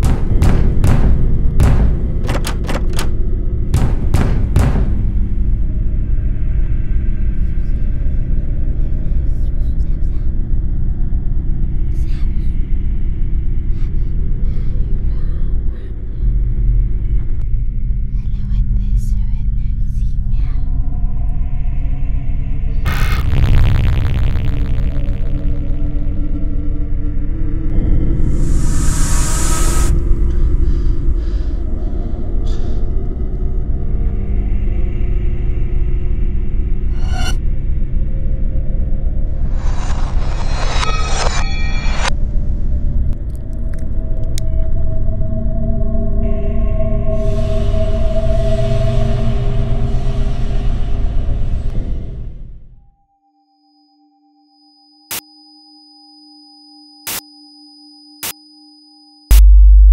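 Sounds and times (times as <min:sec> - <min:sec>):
low rumbling drone: 0:00.0 - 0:53.0, 0:59.3 - 0:59.9
hissing swell: 0:28.1 - 0:31.6, 0:39.3 - 0:42.1.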